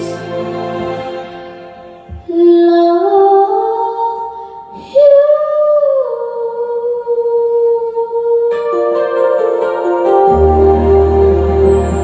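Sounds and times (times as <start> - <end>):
instrumental accompaniment: 0.0 - 2.8, 8.5 - 12.0.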